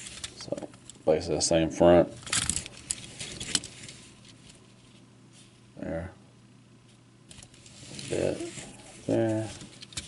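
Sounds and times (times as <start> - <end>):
scratchy rustling: 2.4 - 5.6, 7.3 - 10.0.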